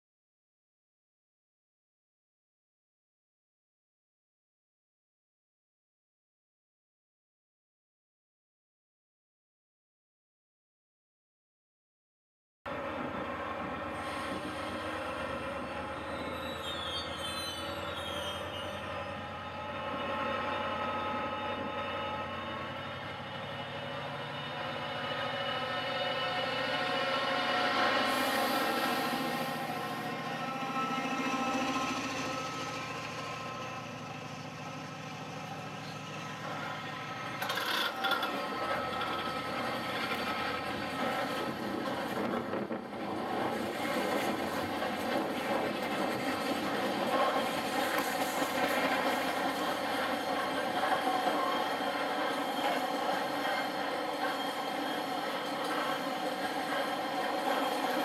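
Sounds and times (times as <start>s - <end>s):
diesel locomotive engine: 12.7s - 58.0s.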